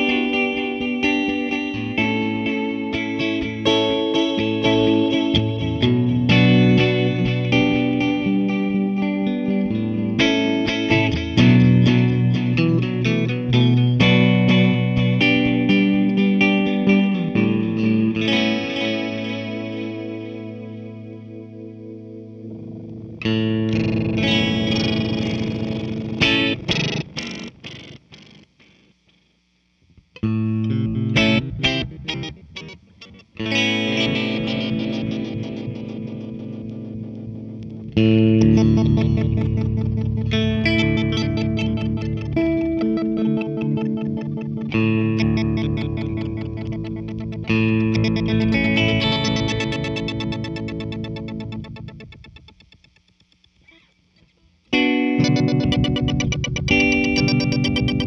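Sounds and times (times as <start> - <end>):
electric guitar chords with echoes: 0.0 - 58.0.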